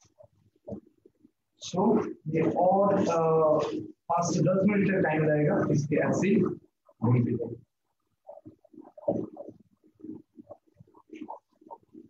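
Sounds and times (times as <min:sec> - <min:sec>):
spatula stirring thick paste: 0:00.0 - 0:12.0.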